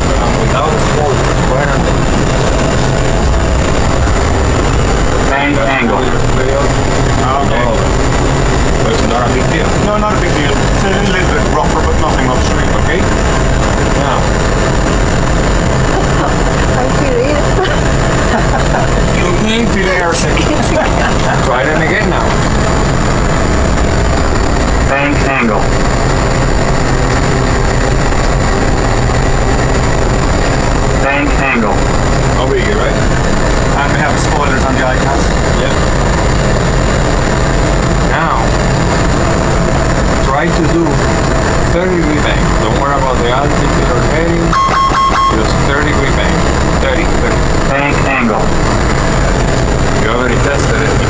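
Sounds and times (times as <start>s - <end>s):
engine and airflow rumble: 0.0s - 51.0s
low hum: 0.0s - 51.0s
thin high whine: 0.0s - 51.0s
thin high steady tone: 44.4s - 46.2s.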